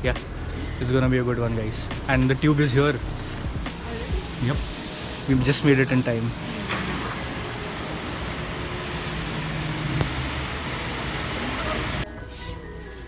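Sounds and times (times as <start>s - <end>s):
street traffic noise: 0.0s - 13.0s
coach engine hum: 1.4s - 12.0s.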